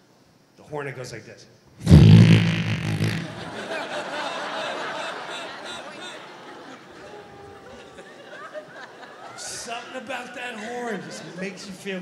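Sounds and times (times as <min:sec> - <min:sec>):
party horn blast: 0:01.8 - 0:03.6
audience laughing: 0:02.8 - 0:09.9.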